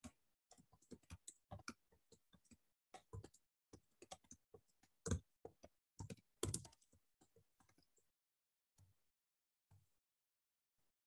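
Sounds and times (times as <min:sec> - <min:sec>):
typing on keyboard: 0:00.0 - 0:08.0.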